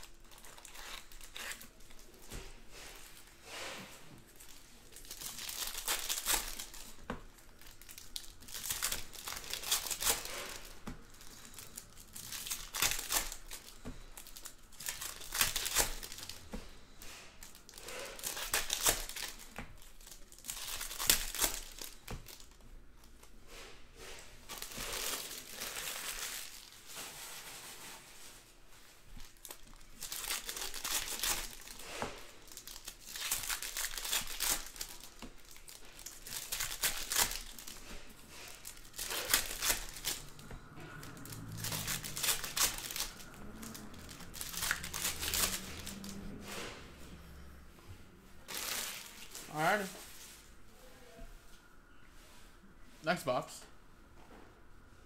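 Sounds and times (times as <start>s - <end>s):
foil wrappers crinkling and tearing: 0.0s - 3.4s, 4.3s - 23.4s, 24.0s - 28.5s, 29.1s - 46.6s, 48.4s - 50.3s.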